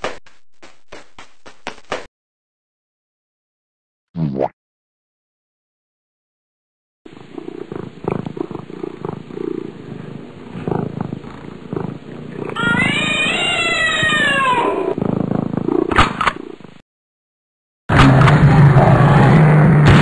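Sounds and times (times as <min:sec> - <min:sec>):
cat purring: 0:07.1 - 0:16.6
cat meowing: 0:12.4 - 0:15.0.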